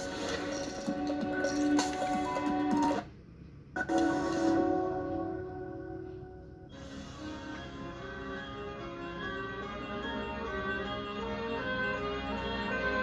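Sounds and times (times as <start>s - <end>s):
television intro music: 0.0s - 3.2s, 3.8s - 13.0s
sharp hit and held chord: 4.5s - 6.8s.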